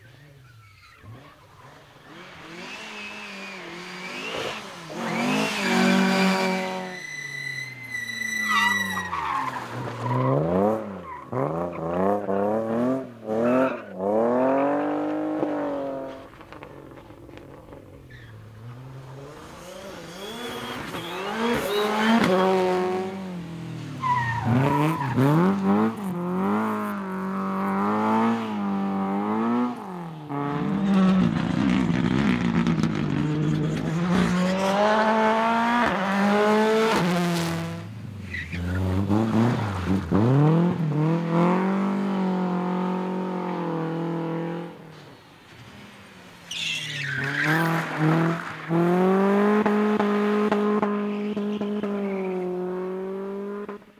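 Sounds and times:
rally car engines revving: 0.0 - 53.9.

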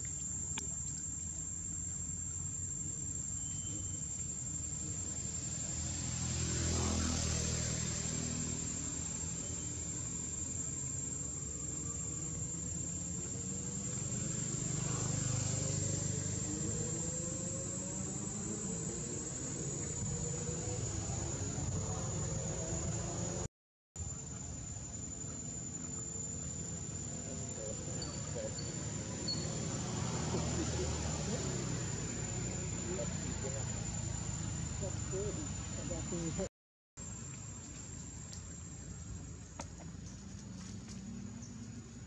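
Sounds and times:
engines humming: 0.0 - 42.0
insects droning: 0.0 - 42.0.

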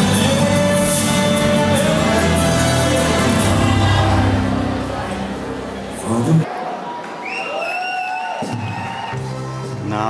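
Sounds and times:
crowd cheering: 0.0 - 9.8.

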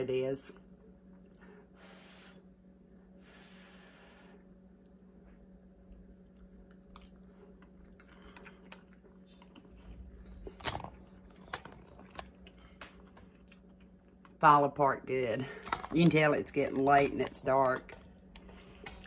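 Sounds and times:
person chewing food: 5.9 - 14.4.

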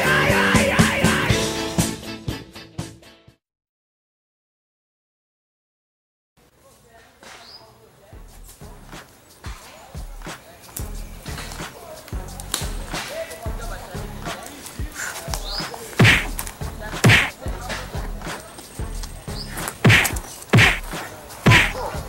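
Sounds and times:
background music with low beat: 8.2 - 22.0
punch sound effects: 16.0 - 16.4, 17.0 - 17.4, 19.8 - 20.9, 21.5 - 21.8.

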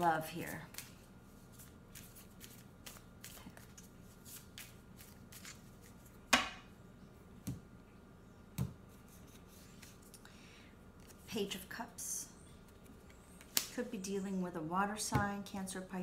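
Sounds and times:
cards being shuffled: 0.5 - 6.2, 9.1 - 10.1.

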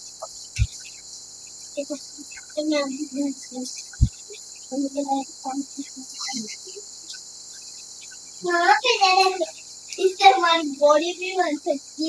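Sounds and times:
steady high-pitched hiss: 0.0 - 12.0
children's vocal sounds: 1.8 - 7.2, 8.4 - 12.0.

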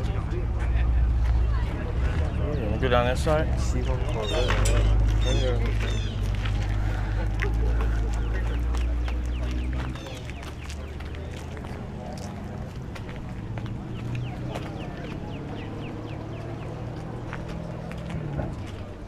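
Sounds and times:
low engine rumble: 0.0 - 19.0
murmur of voices: 0.0 - 19.0.

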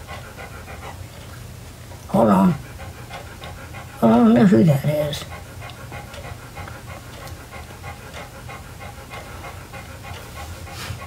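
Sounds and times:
dog panting: 0.0 - 11.0.

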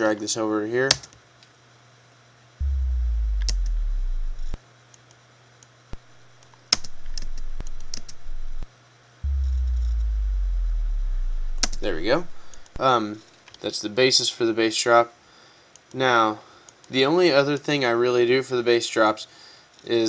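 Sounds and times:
sharp clicks: 2.6 - 4.6, 6.7 - 12.8
sub-bass tone sliding down: 2.6 - 4.6, 6.8 - 12.8.

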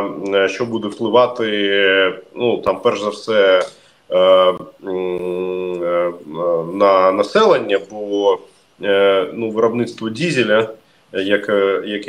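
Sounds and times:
man's drawn-out hesitation sound: 0.0 - 12.0.

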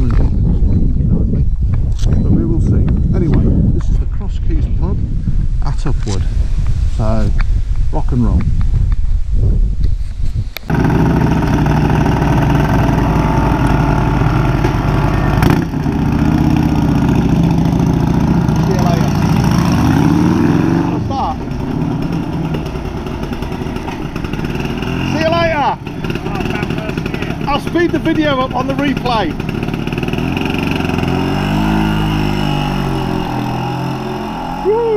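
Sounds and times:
motorcycle engine running close by: 10.7 - 34.9
motorcycle engines pulling away: 10.7 - 34.9.

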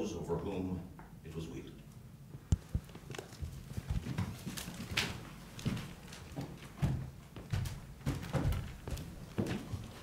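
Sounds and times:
footsteps on wooden floor: 2.6 - 10.0.

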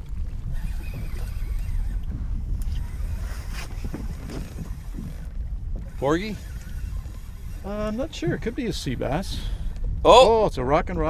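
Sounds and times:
wind rumble on microphone: 0.0 - 11.0
faint clicks: 0.5 - 9.9.

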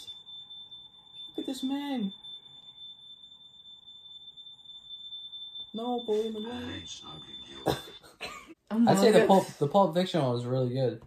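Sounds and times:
steady high-pitched tone: 0.0 - 8.1.

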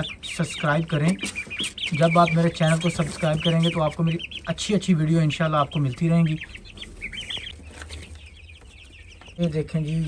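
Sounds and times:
chicks peeping: 0.0 - 10.0.

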